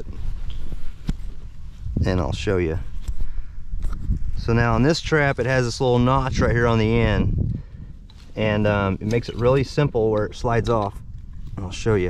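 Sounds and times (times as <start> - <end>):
low rumble on microphone: 0.0 - 12.0.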